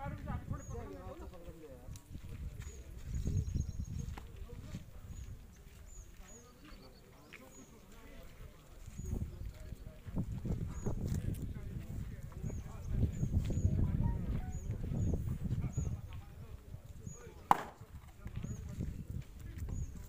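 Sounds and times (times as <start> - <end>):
wind rumbling on microphone: 0.0 - 6.2, 8.3 - 20.0.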